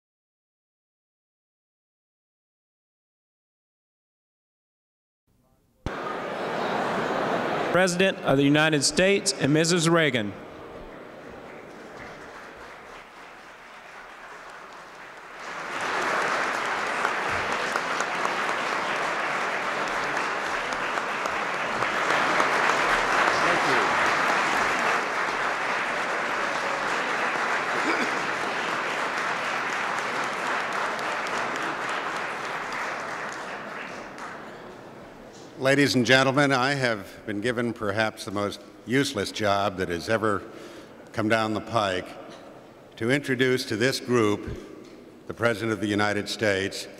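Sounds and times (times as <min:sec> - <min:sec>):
audience applauding: 0:11.2 - 0:34.8.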